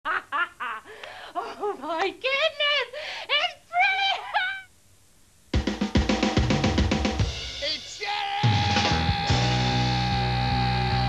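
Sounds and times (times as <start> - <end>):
woman laughing: 0.1 - 4.7
woman speaking: 1.4 - 4.7.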